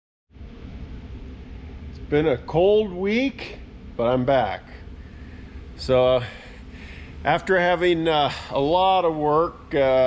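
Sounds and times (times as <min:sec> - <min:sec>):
low hum: 0:00.3 - 0:10.0
even hiss: 0:01.9 - 0:10.0.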